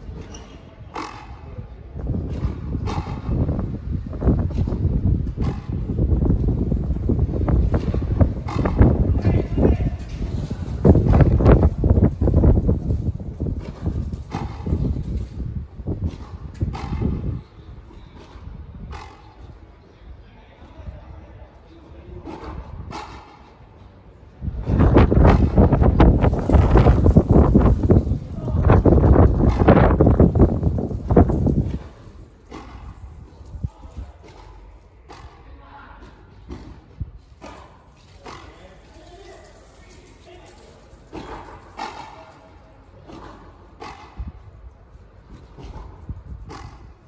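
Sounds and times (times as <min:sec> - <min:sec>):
low room rumble: 0:00.0 - 0:47.0
ball striking court: 0:02.2 - 0:03.6, 0:04.3 - 0:06.2, 0:07.6 - 0:10.2, 0:13.5 - 0:15.1, 0:16.0 - 0:17.5, 0:28.9 - 0:33.1.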